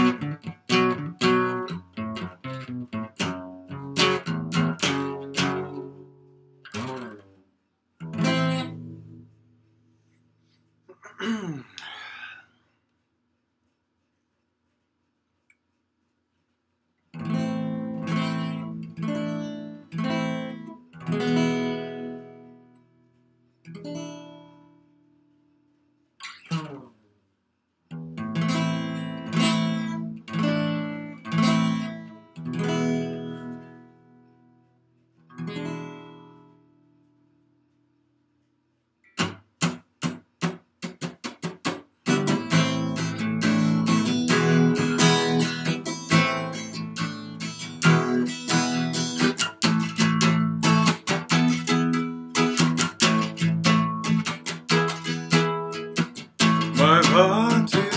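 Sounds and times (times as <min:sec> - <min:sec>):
acoustic guitar strumming: 0:00.0 - 0:07.4, 0:08.0 - 0:09.7, 0:17.1 - 0:24.8, 0:27.9 - 0:34.6, 0:35.3 - 0:37.1, 0:39.0 - 0:57.9.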